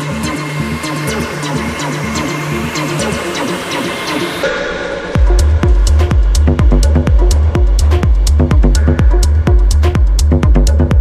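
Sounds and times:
looping bassline: 0.0 - 11.0
ticking hi-hats: 5.2 - 11.0.

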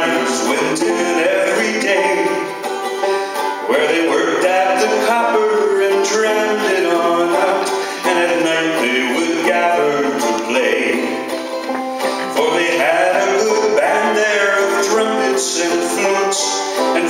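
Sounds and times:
banjo: 0.0 - 17.0
man singing: 0.0 - 17.0.

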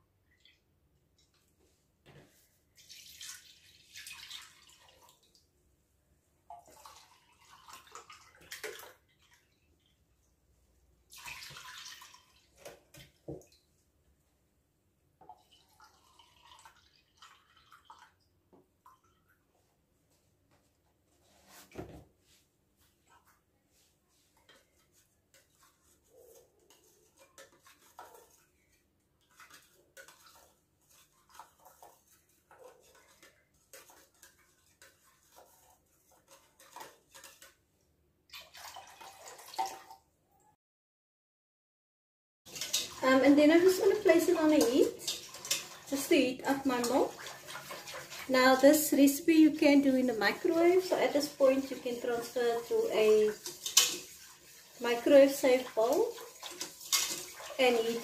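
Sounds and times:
liquid pouring and trickling: 2.8 - 5.5, 6.5 - 9.6, 11.1 - 13.4, 15.2 - 19.4, 38.3 - 40.1, 42.5 - 48.8, 49.6 - 58.0.

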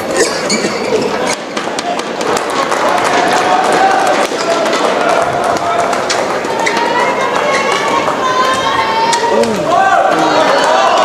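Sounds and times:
arena crowd noise: 0.0 - 11.0
shoes squeaking on court: 0.1 - 1.6.

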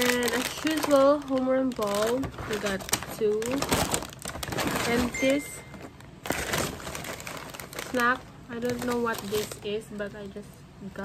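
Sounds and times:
plastic and paper bag rustling: 0.0 - 10.5
person speaking: 4.7 - 5.8.

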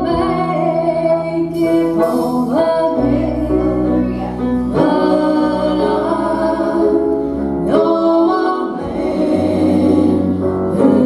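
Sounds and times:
guitar: 0.0 - 11.0
piano: 0.0 - 11.0
women singing in harmony: 0.0 - 11.0.

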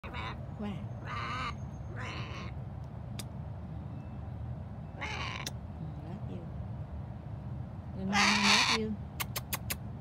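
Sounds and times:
bird harsh calls: 0.0 - 2.6, 4.8 - 5.6, 8.1 - 9.0
steady low rumble: 0.0 - 10.0.

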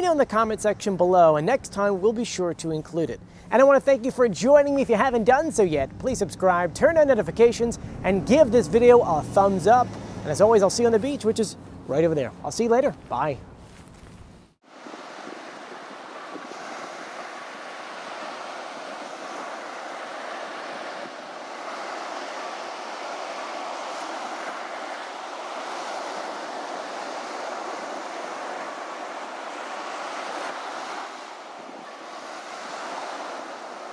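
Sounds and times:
ocean surf breaking: 0.0 - 13.3, 14.6 - 33.9
wind: 0.0 - 33.9.

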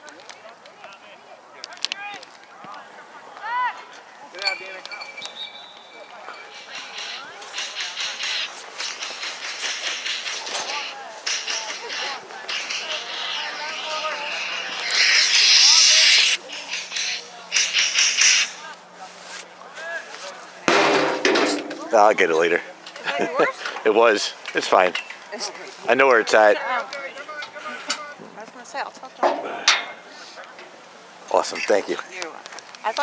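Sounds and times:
faint voices: 0.0 - 33.0
rustling handling noise: 18.8 - 20.6.

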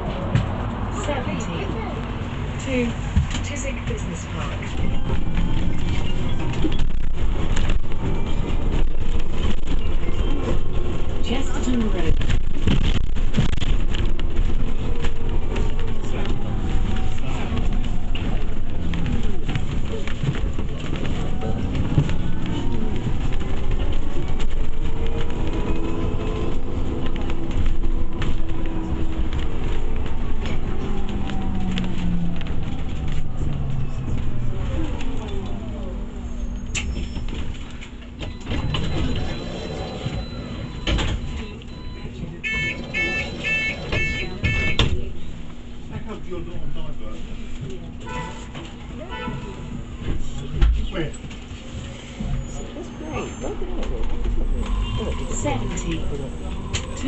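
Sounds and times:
bus engine from inside: 0.0 - 57.0
repeated electronic beeps: 38.2 - 44.9.

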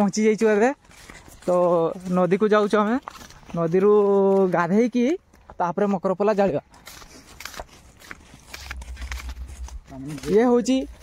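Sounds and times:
low rumble: 8.5 - 11.0.

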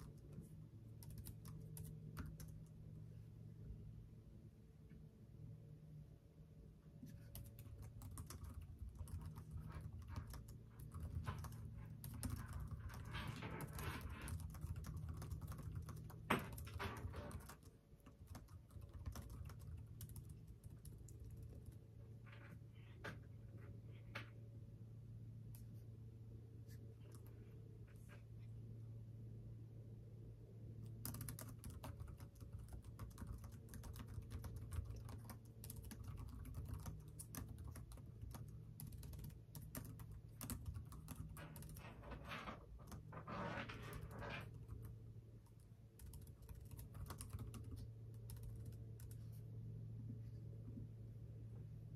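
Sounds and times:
typing on computer keyboard: 0.0 - 2.8, 7.1 - 21.9, 30.8 - 43.1, 43.8 - 49.3
low steady hum: 0.0 - 51.9.

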